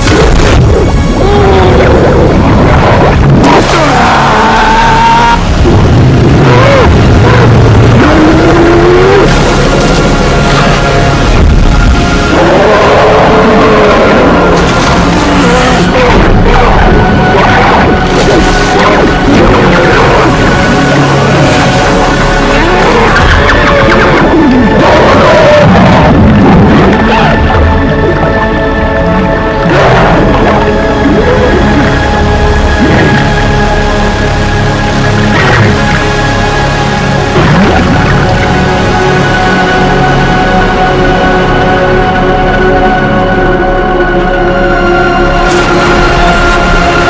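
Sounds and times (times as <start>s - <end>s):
muffled underwater churning: 0.0s - 43.6s
deep rumble: 0.0s - 47.0s
droning synthesizer score: 0.0s - 47.0s.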